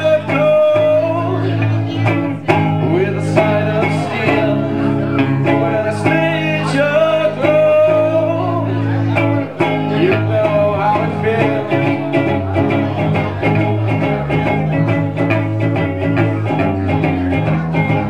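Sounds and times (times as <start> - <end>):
acoustic guitar chords: 0.0 - 18.0
person singing: 0.0 - 18.0.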